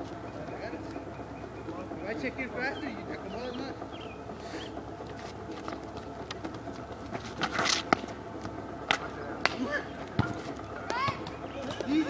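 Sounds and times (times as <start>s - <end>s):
scuffing burst: 4.4s - 9.6s
ball kicked on asphalt: 5.7s - 11.9s.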